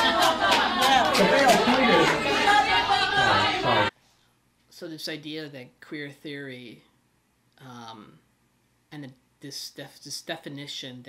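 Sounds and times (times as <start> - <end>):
audience heckling: 0.0 - 3.9.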